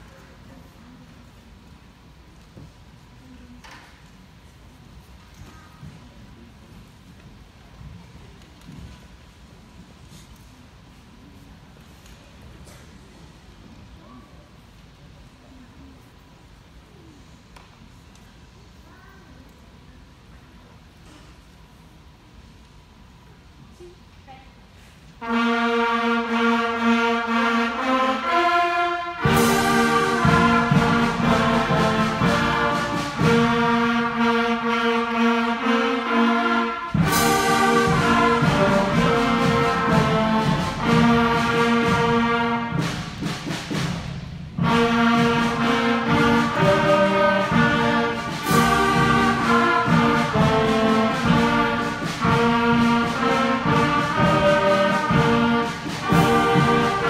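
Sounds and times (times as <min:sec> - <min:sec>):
concert band playing chords: 0:25.7 - 0:43.8, 0:44.6 - 0:57.0
loud percussion crashes: 0:29.2 - 0:34.2, 0:36.9 - 0:57.0.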